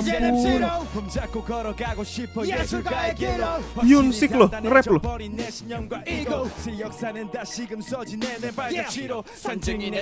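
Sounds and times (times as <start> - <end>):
man rapping over a hip hop beat: 0.0 - 10.0.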